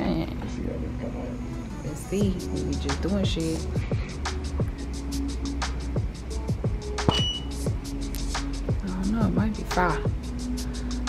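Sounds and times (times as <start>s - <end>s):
background music with beat: 2.1s - 11.0s
high beep: 7.1s - 7.5s.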